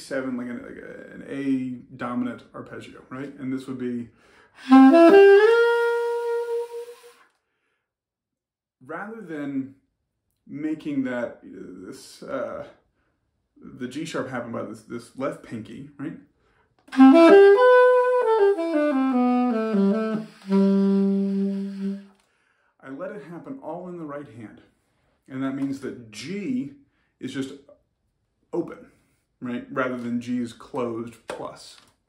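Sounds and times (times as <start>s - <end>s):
breath: 4.1s - 4.6s, 7.3s - 7.9s, 12.9s - 13.3s, 16.4s - 16.8s, 22.2s - 22.8s, 26.9s - 27.2s
alto saxophone playing: 4.6s - 7.2s, 16.9s - 22.2s.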